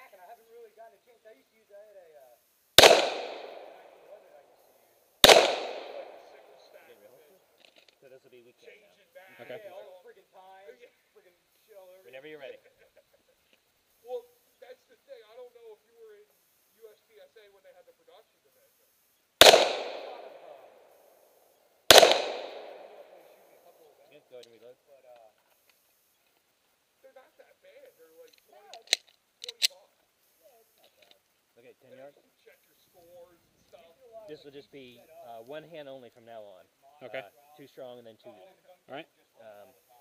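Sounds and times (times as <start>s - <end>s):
pistol shot echo: 2.8s - 4.2s, 5.2s - 6.9s, 19.4s - 20.9s, 21.9s - 23.4s.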